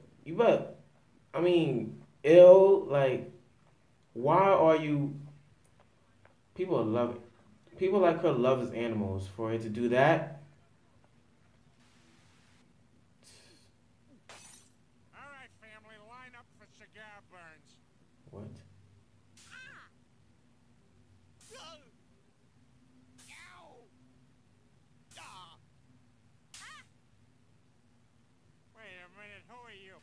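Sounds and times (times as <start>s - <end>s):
cartoon character yelping: 19.4s - 20.0s, 21.4s - 22.0s, 23.2s - 23.9s, 25.1s - 25.6s, 26.5s - 27.0s
high-pitched cartoon voice speaking: 19.4s - 20.0s, 25.1s - 25.6s, 26.6s - 26.9s
short hiss of noise: 21.4s - 21.8s, 23.2s - 23.6s.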